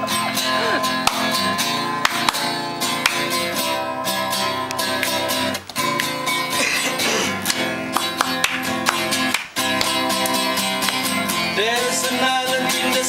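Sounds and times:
acoustic guitar strumming chords: 0:00.0 - 0:13.0.

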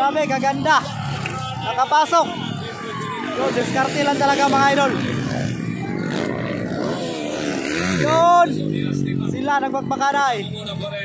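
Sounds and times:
dirt bike engines revving: 0:00.0 - 0:11.0.

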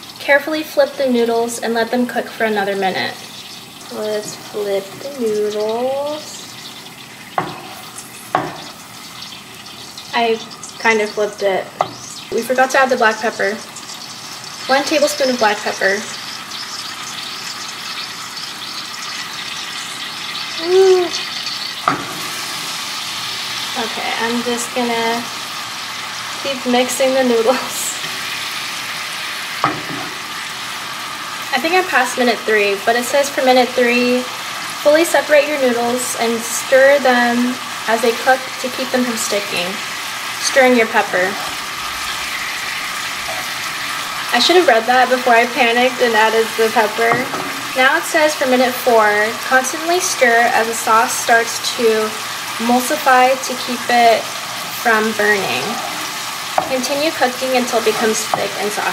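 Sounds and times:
noodles sizzling in a frying pan: 0:00.0 - 0:58.9.

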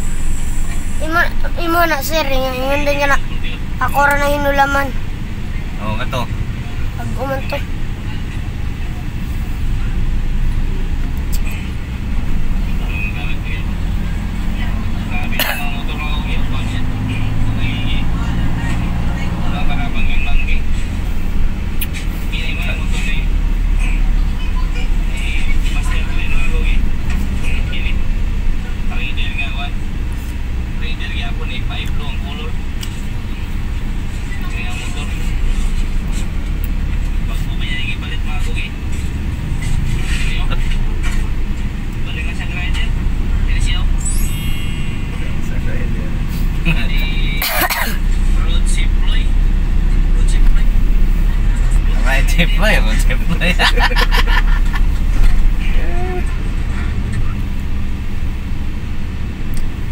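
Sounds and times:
indistinct voices: 0:00.0 - 0:21.1, 0:34.2 - 0:57.9
vehicle engine and road noise: 0:00.0 - 0:59.9.

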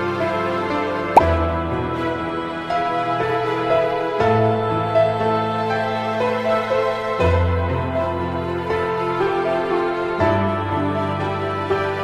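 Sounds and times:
soft instrumental music: 0:00.0 - 0:12.0
pop sound effect: 0:01.2 - 0:01.4.

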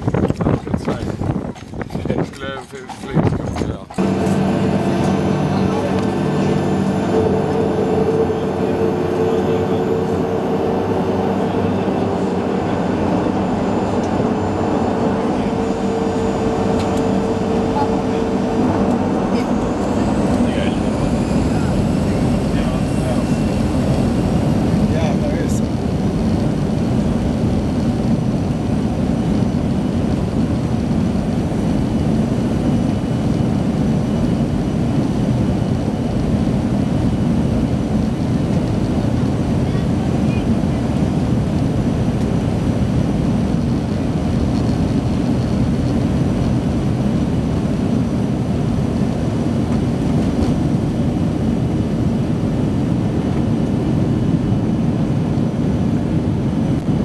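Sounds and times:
jet engines rumbling: 0:00.0 - 0:57.0.

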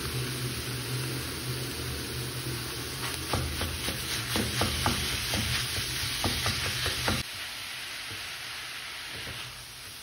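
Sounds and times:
meat frying in a pan: 0:00.0 - 0:10.0.

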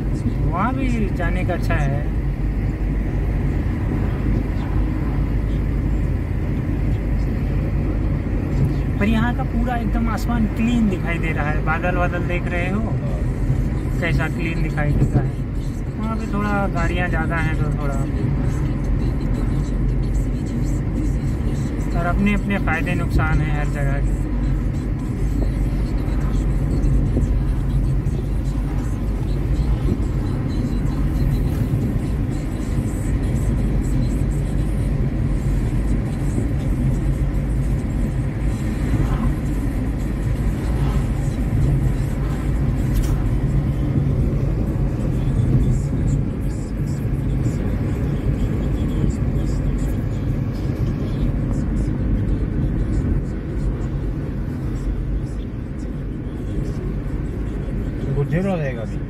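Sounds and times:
road and engine rumble in car: 0:00.0 - 0:59.0.

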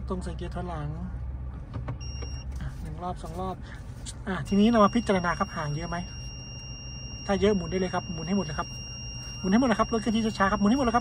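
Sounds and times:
diesel engine idle hum: 0:00.0 - 0:11.0
short electronic beep: 0:02.0 - 0:02.5, 0:04.4 - 0:11.0.

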